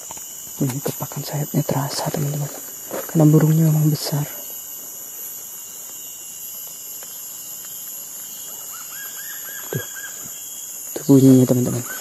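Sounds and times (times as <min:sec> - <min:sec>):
high-pitched insect drone: 0:00.0 - 0:12.0
bird calling: 0:07.1 - 0:12.0.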